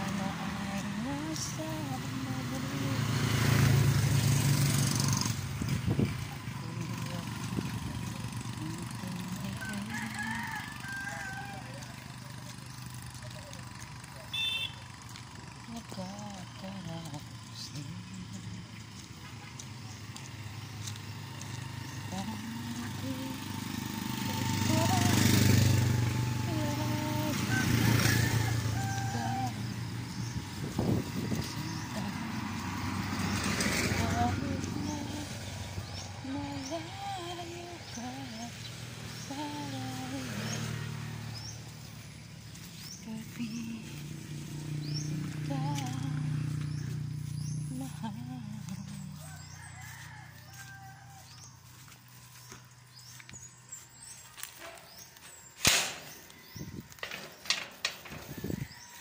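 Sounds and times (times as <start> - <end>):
motorcycle engine driving away: 0.0 - 59.0
sharp crack: 55.6 - 56.2.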